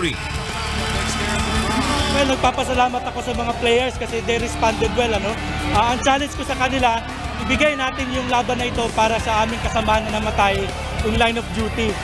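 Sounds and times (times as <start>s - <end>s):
arena crowd noise: 0.0s - 12.0s
background music: 0.0s - 12.0s.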